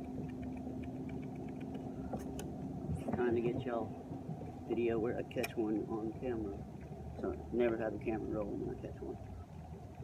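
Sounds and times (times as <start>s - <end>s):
sharp clicks: 0.0s - 2.6s, 5.3s - 5.9s
low rumble with hum: 0.0s - 10.0s.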